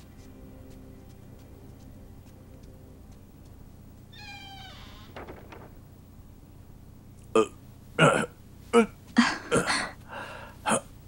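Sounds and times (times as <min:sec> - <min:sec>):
person sobbing: 0:07.4 - 0:10.9.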